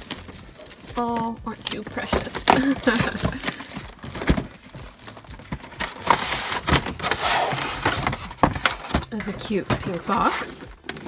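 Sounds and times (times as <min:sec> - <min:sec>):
rustling: 0:00.0 - 0:11.0.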